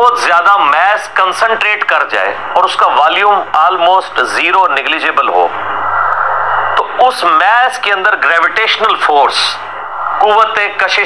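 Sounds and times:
man speaking: 0:00.0 - 0:05.6, 0:06.8 - 0:11.0.

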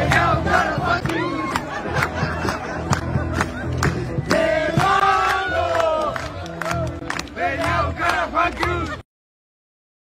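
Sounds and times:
crowd shouting and cheering: 0:00.0 - 0:09.0.

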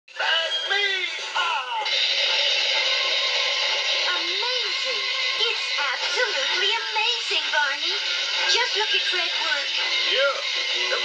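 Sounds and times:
television music: 0:00.1 - 0:11.0
television voices: 0:00.1 - 0:11.0.

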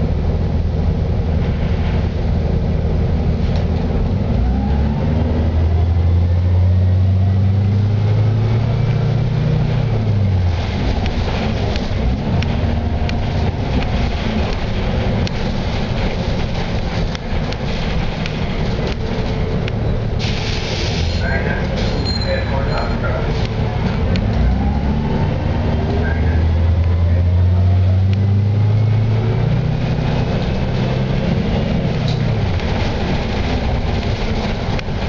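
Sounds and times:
bus engine drone: 0:00.0 - 0:35.0
road noise: 0:00.0 - 0:35.0
interior rattles and clicks: 0:10.5 - 0:20.2, 0:30.0 - 0:35.0.

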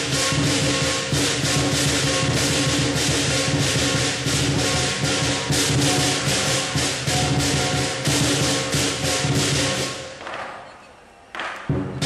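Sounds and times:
hand cymbals clashing: 0:00.0 - 0:10.2
large drum beating: 0:00.0 - 0:10.5, 0:11.4 - 0:12.0.

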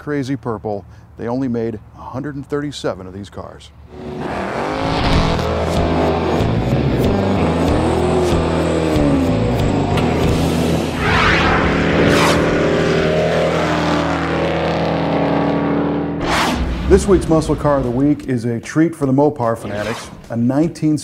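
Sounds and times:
car engine revving: 0:03.9 - 0:18.3
music: 0:06.2 - 0:11.1
whooshing transition sounds: 0:10.5 - 0:13.4, 0:16.2 - 0:18.4, 0:19.4 - 0:20.4.

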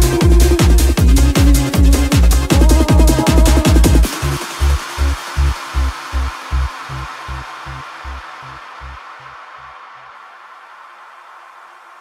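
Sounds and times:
fast kick drum: 0:00.0 - 0:04.2
electronic dance track: 0:00.0 - 0:10.0
hiss: 0:00.0 - 0:12.0.

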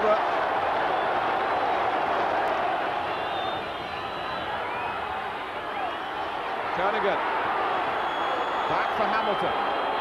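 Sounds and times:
stadium crowd cheering: 0:00.0 - 0:10.0.

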